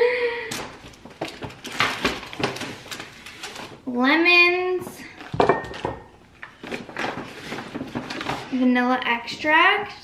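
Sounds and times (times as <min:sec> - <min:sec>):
paper bag rustling: 0:00.7 - 0:03.9, 0:06.4 - 0:08.8.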